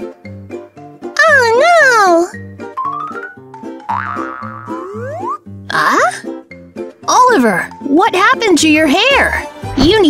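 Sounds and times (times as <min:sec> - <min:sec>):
bouncy children's music: 0:00.0 - 0:10.0
cartoon glide sound effects: 0:02.8 - 0:06.1.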